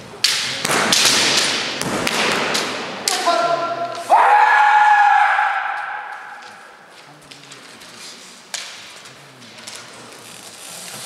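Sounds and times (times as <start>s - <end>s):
person shouting a drawn-out kiai: 3.2s - 5.8s.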